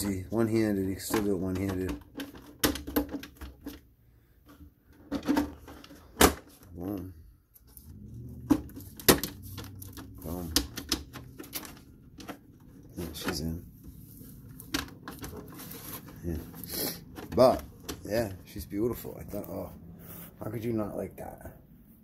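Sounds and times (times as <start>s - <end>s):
plastic toy truck clicks and knocks: 0.8s - 3.8s, 8.5s - 13.6s.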